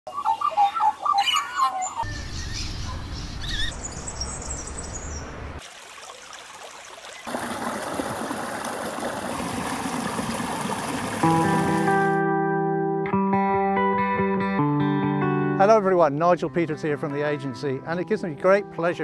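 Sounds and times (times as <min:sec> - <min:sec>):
birds calling and warbling: 0:00.1 - 0:05.6
water rushing over rocks: 0:05.6 - 0:12.2.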